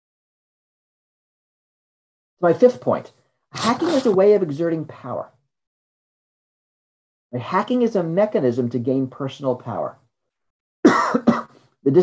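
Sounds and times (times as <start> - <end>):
speech: 2.4 - 5.4, 7.4 - 10.0
man coughing: 10.9 - 11.6.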